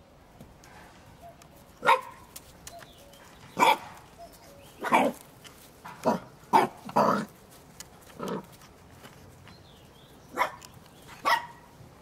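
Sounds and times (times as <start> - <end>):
puppy barking: 1.8 - 2.2, 3.6 - 4.0, 4.8 - 5.2, 6.0 - 7.3, 10.3 - 11.7.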